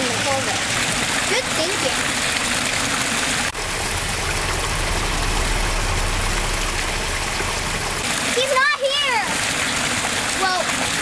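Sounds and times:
creek water rushing over rocks: 0.0s - 11.0s.

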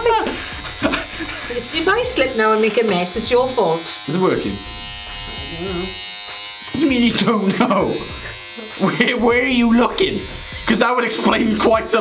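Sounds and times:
person laughing: 0.0s - 1.7s, 6.8s - 9.2s
electric hair clippers buzzing: 0.0s - 12.0s.

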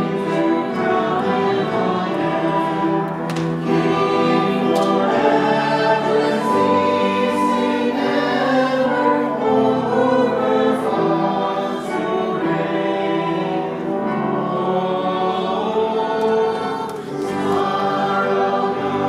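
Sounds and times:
trumpet: 0.0s - 12.8s
congregation singing a hymn: 0.0s - 19.0s
piano: 0.0s - 19.0s
violin: 0.0s - 19.0s.

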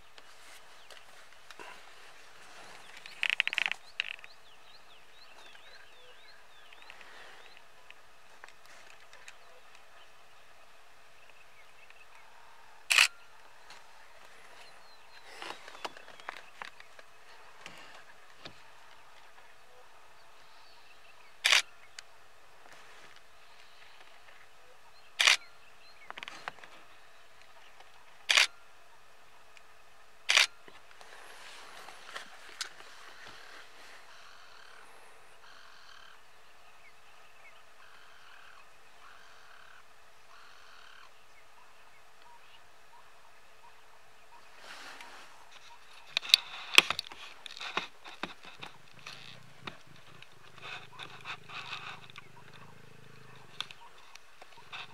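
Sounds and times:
faint background noise: 0.0s - 54.9s
buzzing animal calls: 48.6s - 54.9s.

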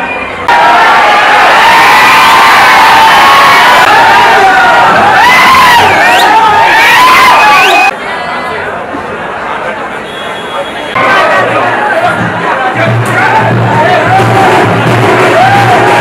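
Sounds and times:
crowd cheering and shouting: 0.0s - 8.8s, 10.5s - 16.0s
quiet chatter: 7.9s - 14.4s.

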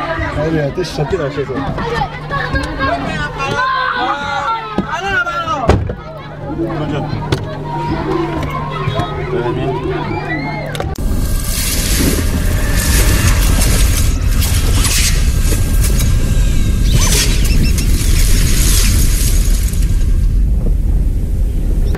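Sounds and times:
deep steady rumble: 6.3s - 21.9s
swooshing sweeps: 11.0s - 21.9s.

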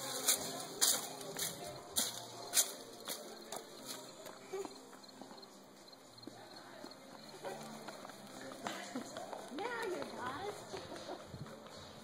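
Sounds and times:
faint voices: 0.0s - 12.0s
hard shoes on pavement: 0.0s - 12.0s.

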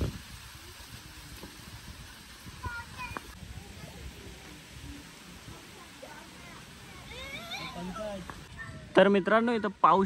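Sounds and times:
wind through trees: 0.0s - 10.0s.

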